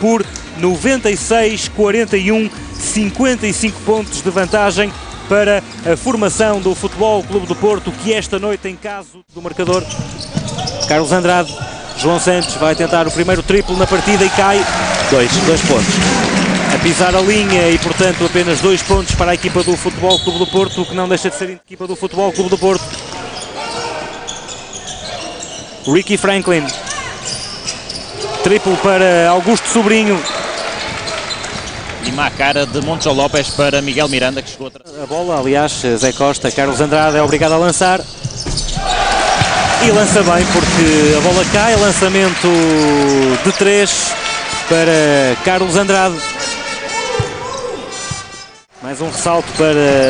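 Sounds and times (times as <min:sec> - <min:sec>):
basketball court play sounds: 0:00.0 - 0:08.0, 0:09.3 - 0:21.2, 0:29.6 - 0:34.2, 0:35.3 - 0:44.8, 0:45.5 - 0:50.0
crowd noise: 0:00.0 - 0:34.4, 0:35.3 - 0:50.0
basketball bouncing on court: 0:37.1 - 0:42.8.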